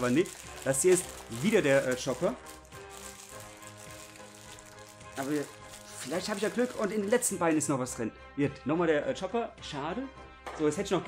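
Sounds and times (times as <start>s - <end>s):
toy packaging rustling: 0.0s - 7.6s
soft background music: 0.0s - 11.0s.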